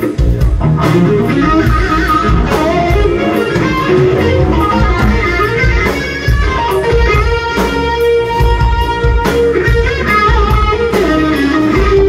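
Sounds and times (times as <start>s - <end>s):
driving drum beat: 0.0s - 12.0s
electric guitar notes: 0.0s - 12.0s
low bass: 0.0s - 12.0s.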